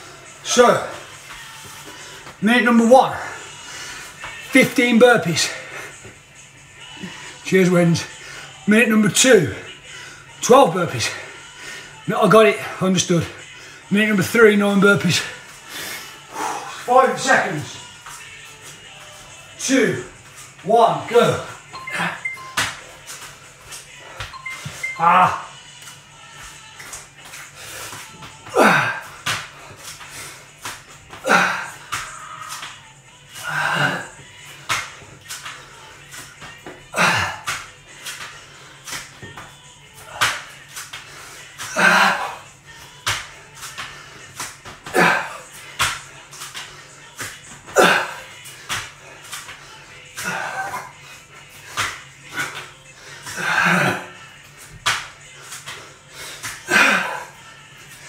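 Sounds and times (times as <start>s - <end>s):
hands and feet slapping tiled floor: 0.8s - 2.4s, 22.5s - 58.0s.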